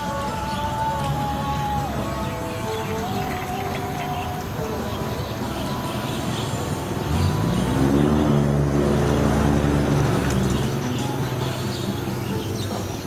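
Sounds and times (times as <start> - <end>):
vehicle engine accelerating: 4.0 - 13.0.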